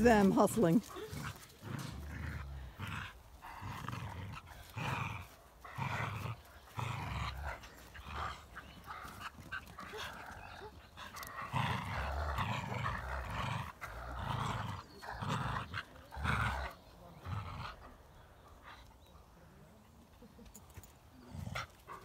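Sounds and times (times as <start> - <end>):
dogs play growling: 0.0 - 22.0.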